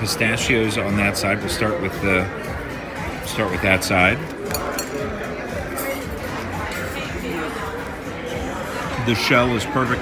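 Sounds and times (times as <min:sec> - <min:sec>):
background chatter: 0:00.0 - 0:10.0
tableware clinking: 0:04.2 - 0:07.7.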